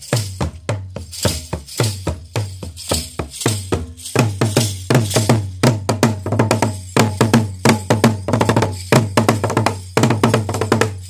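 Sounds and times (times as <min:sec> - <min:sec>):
drums struck with sticks: 0:00.0 - 0:11.0.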